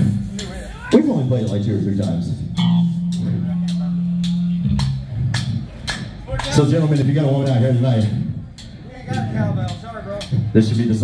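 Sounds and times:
electric bass guitar low notes: 1.2 - 11.0
light cymbal taps: 1.4 - 10.8.

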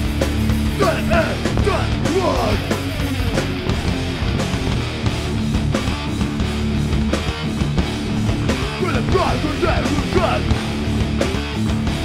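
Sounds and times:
bass guitar: 0.0 - 12.0
drums: 0.0 - 12.0
electric guitar: 0.0 - 12.0.

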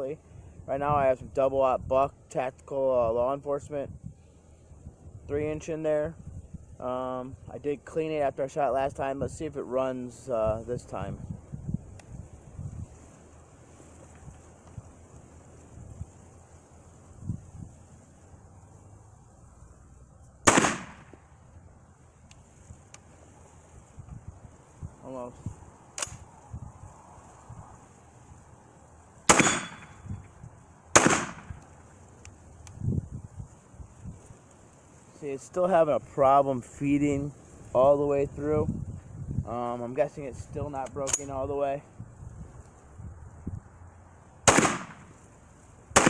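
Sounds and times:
shotgun shots with echo: 20.4 - 21.1, 29.3 - 30.0, 31.0 - 31.6, 44.5 - 45.1.

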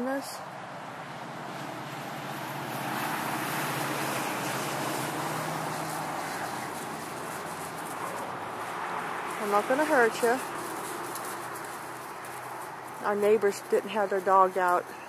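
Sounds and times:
vehicle passing by: 0.0 - 15.0.

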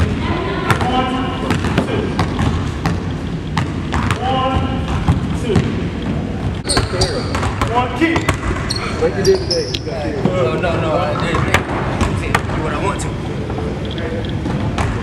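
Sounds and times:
voices in a hall: 0.0 - 15.0
basketballs bouncing on hardwood floor: 0.7 - 8.7, 14.4 - 15.0.

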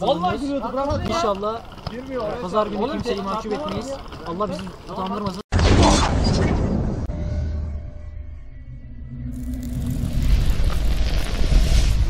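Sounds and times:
deep low rumble: 6.9 - 12.0.

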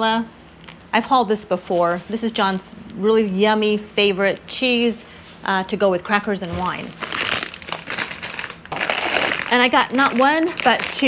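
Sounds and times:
plastic packaging crinkling: 6.6 - 11.0.

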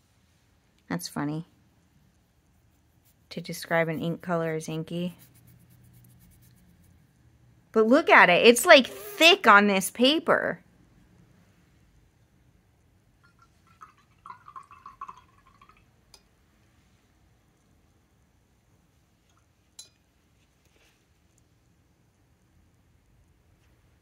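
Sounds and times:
faint handling sounds: 19.2 - 21.6.

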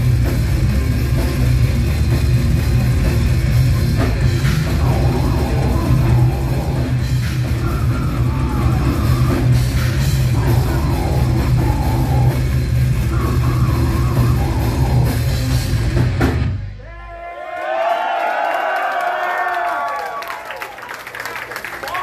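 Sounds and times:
heavy metal band playing live: 0.0 - 16.8
pounding drum kit: 0.0 - 17.2
crowd cheering and whooping: 16.8 - 22.0
people clapping: 17.4 - 22.0.

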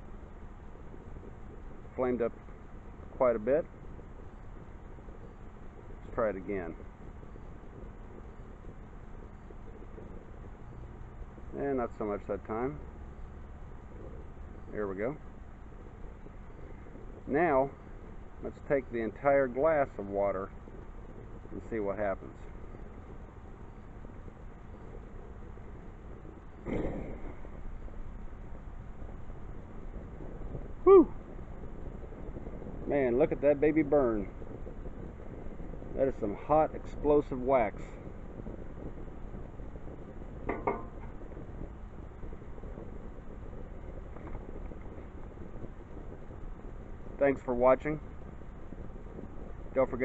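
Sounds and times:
candle flame rushing: 0.0 - 50.0
loud whoosh of fireball: 0.0 - 50.0
low background hiss: 0.0 - 50.0
wind on microphone: 0.0 - 50.0.

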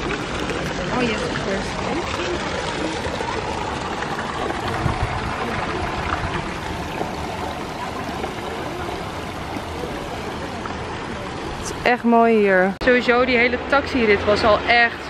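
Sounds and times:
running water in a pond: 0.0 - 15.0.

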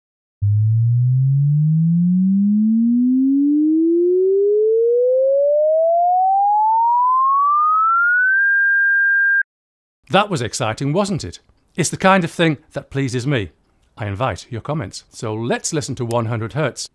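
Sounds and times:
sine wave tone sweep: 0.4 - 9.4.

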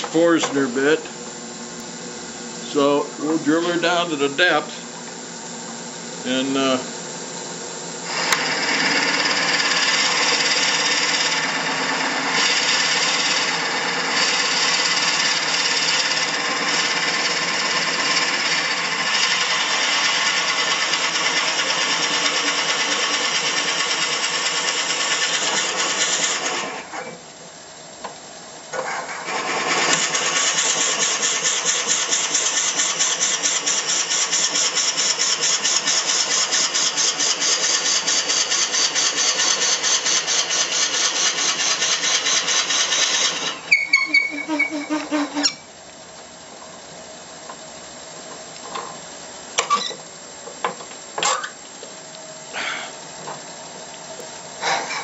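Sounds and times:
drill bit grinding into wood: 8.0 - 26.8, 29.3 - 45.6
lathe running: 8.0 - 26.9, 29.1 - 45.6.

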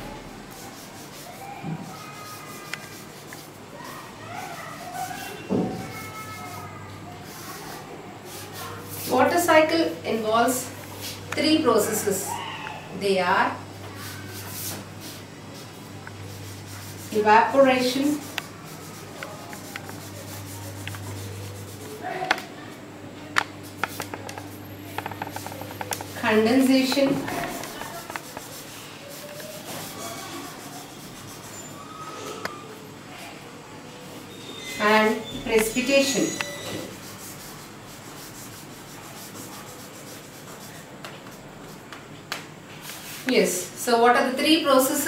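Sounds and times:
steady low hum: 6.0 - 31.8
marker pen writing on paper: 16.3 - 22.0, 23.7 - 31.8.

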